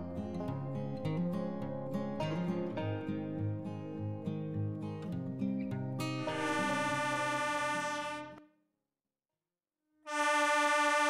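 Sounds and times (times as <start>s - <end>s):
acoustic guitar music: 0.0s - 8.4s
locomotive air horn blast: 6.2s - 8.4s, 10.1s - 11.0s.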